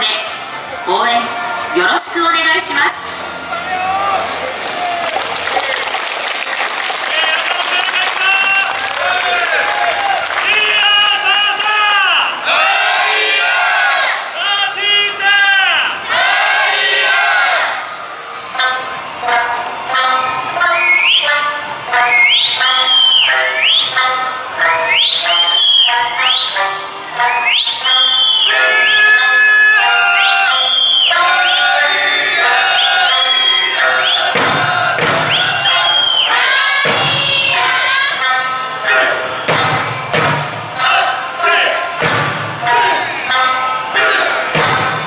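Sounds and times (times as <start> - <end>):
high rising calls: 27.2 - 38.2
heavy barrel drum beats: 32.4 - 37.9, 39.3 - 43.0, 44.4 - 45.0.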